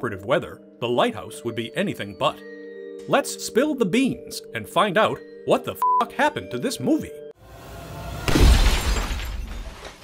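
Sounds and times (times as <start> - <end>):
smashing crash with deep boom: 8.0 - 10.0.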